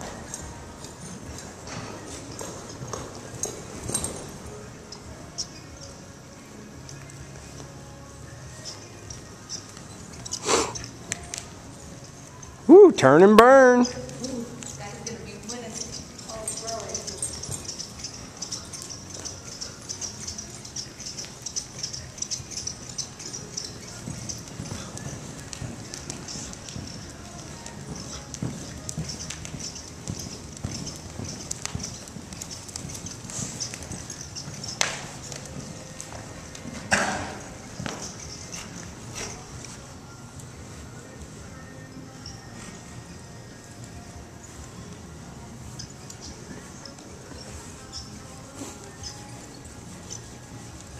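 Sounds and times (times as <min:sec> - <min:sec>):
horse hoofbeats on soft dirt: 0:00.0 - 0:50.9.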